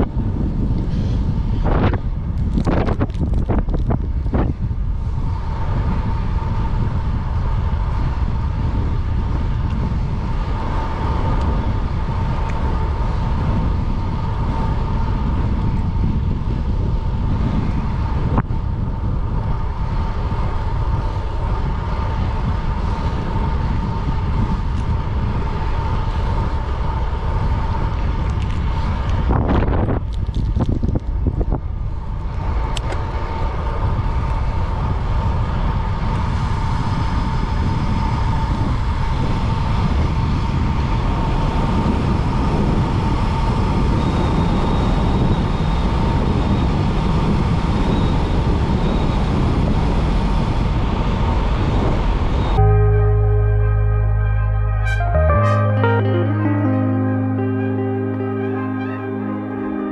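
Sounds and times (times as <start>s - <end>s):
wind buffeting microphone: 0.0s - 52.6s.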